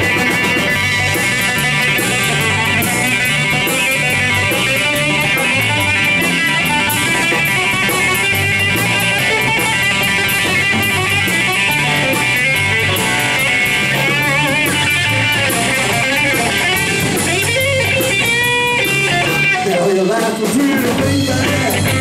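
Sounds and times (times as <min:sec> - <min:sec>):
drum kit with cymbal ticks: 0:00.0 - 0:19.7
bass guitar: 0:00.0 - 0:22.0
lead electric guitar: 0:00.0 - 0:22.0.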